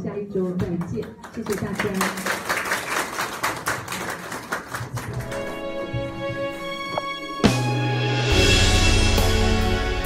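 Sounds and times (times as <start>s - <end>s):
people applauding: 0.9s - 5.8s.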